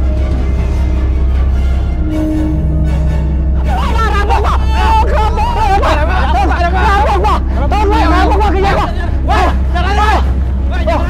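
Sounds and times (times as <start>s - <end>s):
steady low hum: 0.0s - 11.0s
men shouting in panic: 3.6s - 11.0s.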